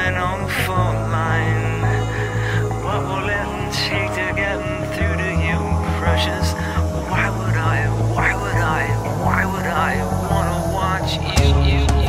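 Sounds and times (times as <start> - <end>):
backing track: 0.0 - 12.0
man singing rock song: 0.0 - 12.0
rapid pulsing low beat: 0.0 - 12.0.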